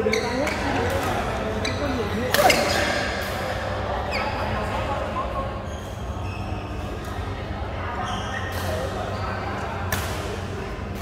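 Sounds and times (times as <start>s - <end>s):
shoes squeaking on court: 0.0s - 3.0s
voices in a large hall: 0.0s - 11.0s.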